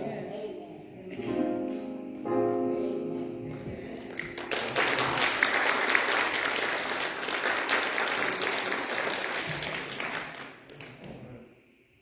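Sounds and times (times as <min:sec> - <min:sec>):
congregation applauding: 0:03.5 - 0:11.1.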